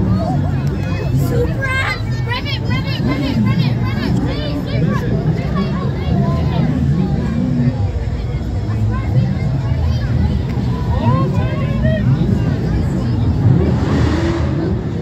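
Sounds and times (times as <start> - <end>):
car engine low rumble: 0.0 - 15.0
crowd chatter: 0.0 - 15.0.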